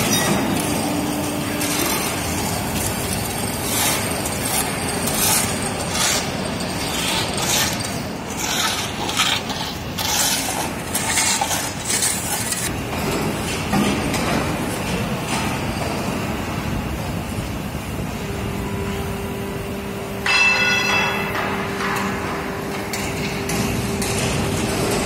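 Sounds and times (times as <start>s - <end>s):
factory machinery noise: 0.0s - 25.0s
steady hum: 0.0s - 25.0s
broom sweeping concrete: 0.6s - 12.7s
metallic clang: 20.2s - 24.5s.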